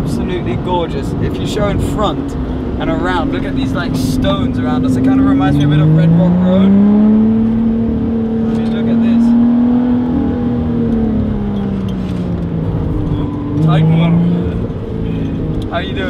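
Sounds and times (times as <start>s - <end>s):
car engine from inside cabin: 0.0s - 16.0s.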